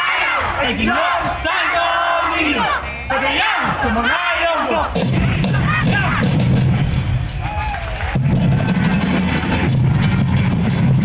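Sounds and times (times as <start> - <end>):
crowd chanting and yelling: 0.0 - 9.4.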